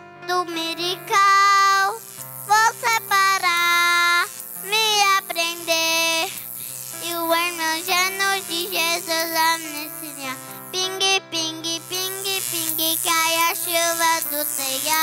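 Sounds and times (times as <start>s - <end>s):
girl singing into a microphone: 0.1s - 15.0s.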